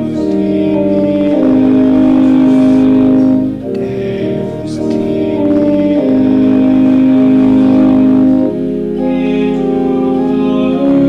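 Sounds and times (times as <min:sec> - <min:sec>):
organ-like keyboard chord: 0:00.0 - 0:11.0.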